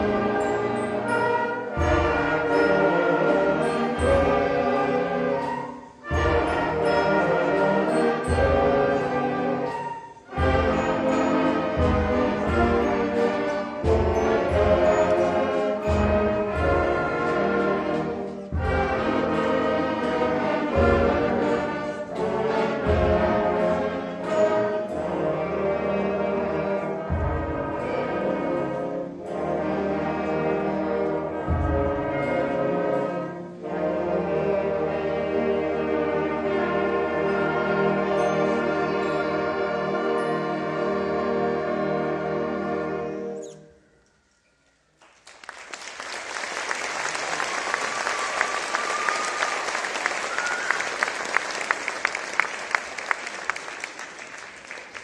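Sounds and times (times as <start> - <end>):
concert band playing: 0.0 - 43.3.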